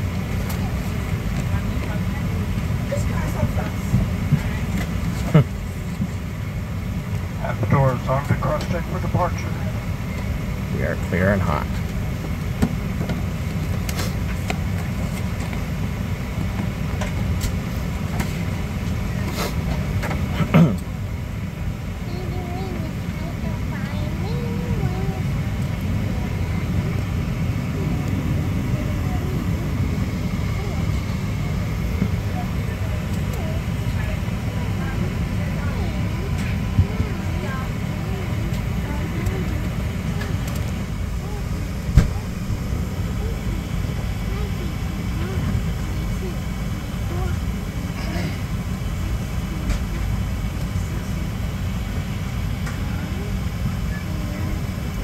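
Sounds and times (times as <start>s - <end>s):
aircraft cabin rumble: 0.0s - 55.0s
murmuring passenger voices: 0.0s - 55.0s.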